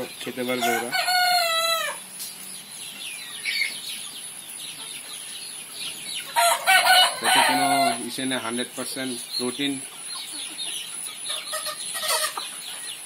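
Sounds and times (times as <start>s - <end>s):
chickens clucking: 0.0s - 13.0s
rooster crowing: 0.6s - 2.0s, 6.4s - 8.0s.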